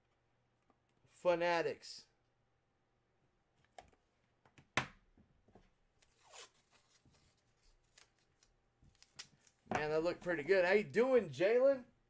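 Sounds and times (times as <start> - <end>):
man talking: 1.1 - 2.1, 9.7 - 11.9.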